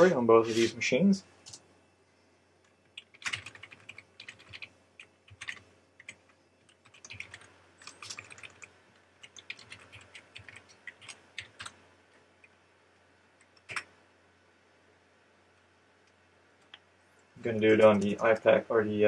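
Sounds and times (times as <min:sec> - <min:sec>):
typing on a computer keyboard: 0:02.9 - 0:11.8, 0:13.5 - 0:13.9.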